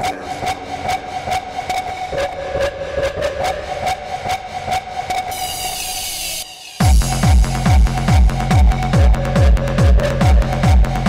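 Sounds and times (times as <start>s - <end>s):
pulsing synth tone: 0.0s - 11.0s.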